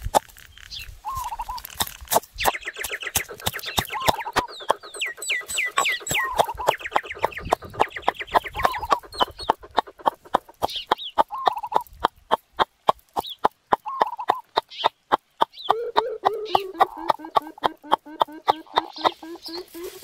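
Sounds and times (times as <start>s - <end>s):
chickens clucking: 1.0s - 20.0s
wooden pestle pounding in mortar: 1.8s - 6.6s.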